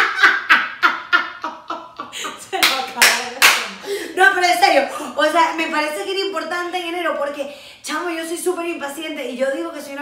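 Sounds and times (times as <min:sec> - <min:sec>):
women laughing: 0:00.0 - 0:02.6
hands clapping: 0:02.6 - 0:03.8.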